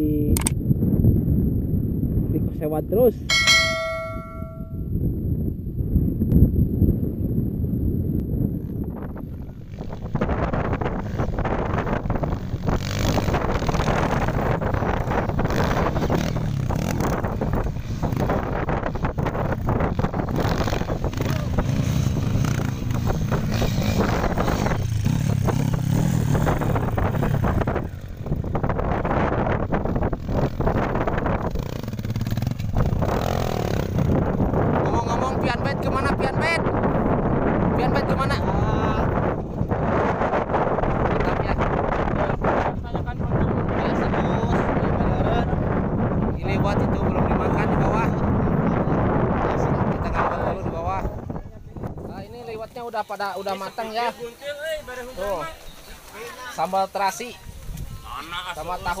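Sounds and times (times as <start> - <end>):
motorcycle engines running: 1.2 - 59.0
bell-like chime: 3.3 - 4.9.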